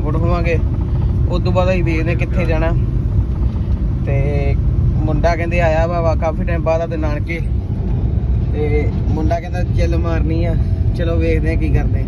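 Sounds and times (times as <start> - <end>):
car engine rumble: 0.0 - 12.0
road noise inside car: 0.0 - 12.0.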